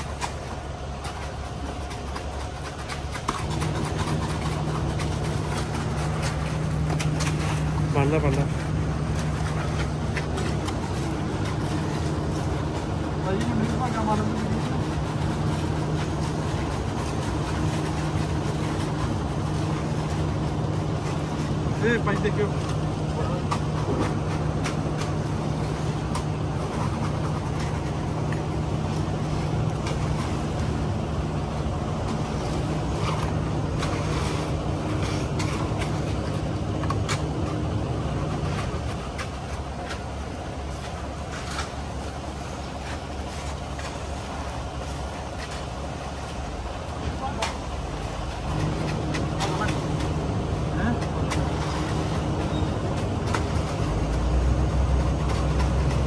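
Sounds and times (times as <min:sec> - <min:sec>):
truck engine droning: 0:00.0 - 0:56.0.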